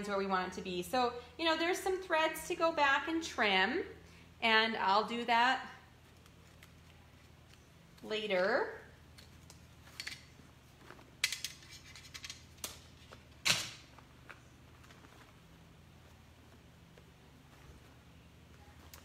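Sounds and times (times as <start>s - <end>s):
fabric handling clicks and rustles: 9.1s - 19.0s.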